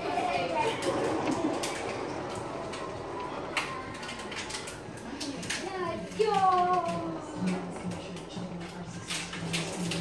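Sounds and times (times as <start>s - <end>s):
heavy rain falling: 0.0s - 6.6s.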